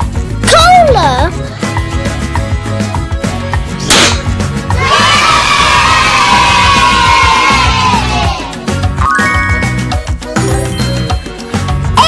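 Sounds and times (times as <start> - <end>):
children's music with steady beat: 0.0 - 12.0
whooshing party popper pop: 3.8 - 4.4
children cheering: 4.8 - 8.6.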